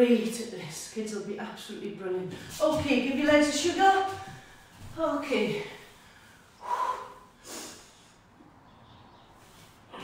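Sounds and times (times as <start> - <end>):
woman breathing hard: 5.8 - 8.3.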